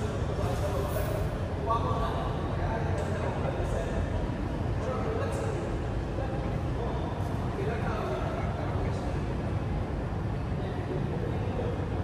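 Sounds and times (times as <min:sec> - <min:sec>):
low rumble of sports hall: 0:00.0 - 0:12.0.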